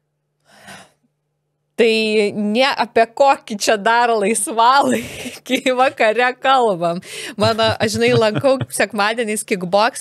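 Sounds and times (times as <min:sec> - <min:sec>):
breath into a microphone: 0:00.4 - 0:01.0, 0:07.0 - 0:07.4
woman speaking: 0:01.8 - 0:10.0.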